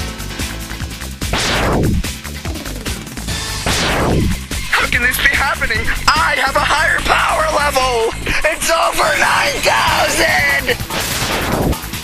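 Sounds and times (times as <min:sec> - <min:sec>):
loud background music: 0:00.0 - 0:12.0
person yelling: 0:04.8 - 0:10.8.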